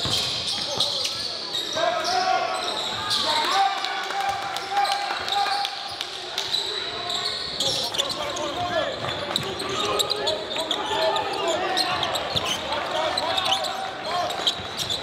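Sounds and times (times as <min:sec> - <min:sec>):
sneakers squeaking: 0:00.0 - 0:03.5, 0:05.3 - 0:15.0.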